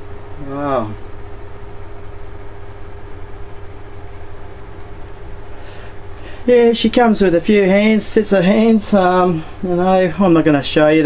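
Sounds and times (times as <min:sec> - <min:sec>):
mechanical hum with hiss: 0:00.0 - 0:11.0.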